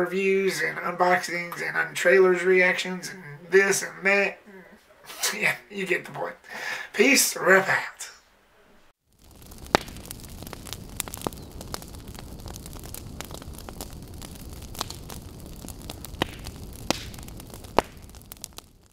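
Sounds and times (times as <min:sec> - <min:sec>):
fire crackling and popping: 0:09.0 - 0:18.9
fire rushing: 0:09.0 - 0:18.9.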